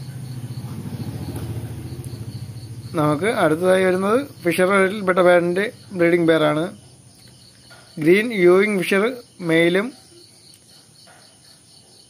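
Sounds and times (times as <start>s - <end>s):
low pulsing motor hum: 0.0s - 7.0s.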